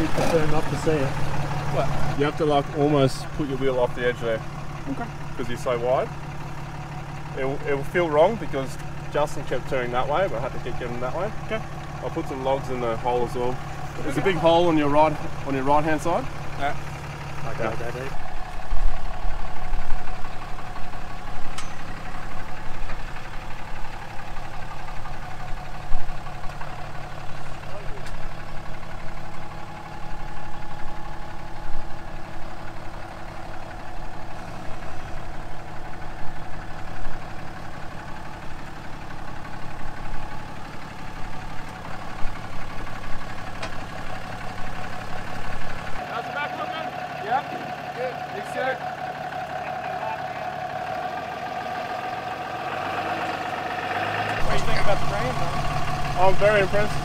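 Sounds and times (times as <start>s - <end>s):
truck engine rumbling: 0.0s - 57.0s.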